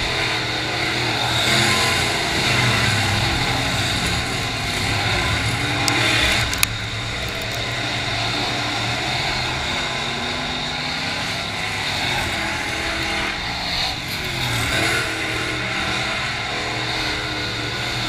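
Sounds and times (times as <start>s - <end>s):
race car engines at speed: 0.0s - 18.0s.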